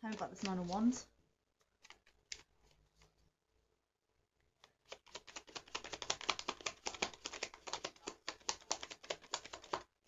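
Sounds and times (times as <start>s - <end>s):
cards being shuffled: 1.6s - 3.2s, 4.5s - 9.9s.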